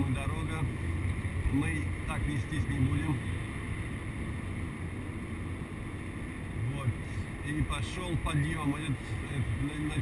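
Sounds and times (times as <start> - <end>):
car road noise: 0.0 - 10.0.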